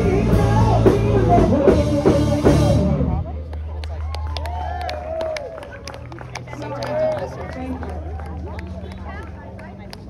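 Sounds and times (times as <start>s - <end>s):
people talking: 6.2s - 10.0s.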